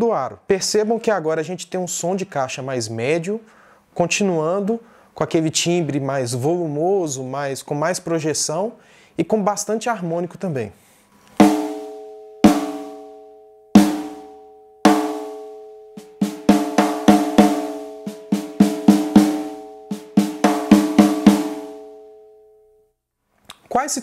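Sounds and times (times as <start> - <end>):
snare drum rimshots: 13.8 - 14.2, 16.0 - 21.7.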